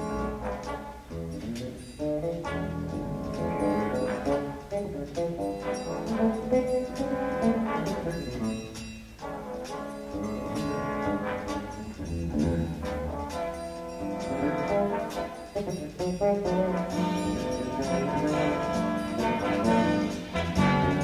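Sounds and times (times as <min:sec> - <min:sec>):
big band jazz with brass: 0:00.0 - 0:21.0.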